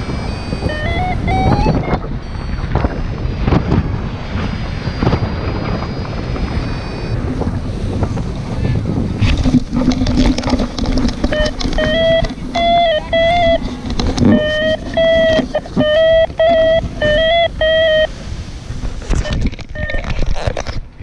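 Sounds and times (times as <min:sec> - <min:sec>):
variometer electronic beeps: 0:00.0 - 0:07.9, 0:09.6 - 0:18.2, 0:19.2 - 0:20.2
wind rushing on microphone: 0:00.0 - 0:21.0
scattered knocks: 0:09.2 - 0:17.4.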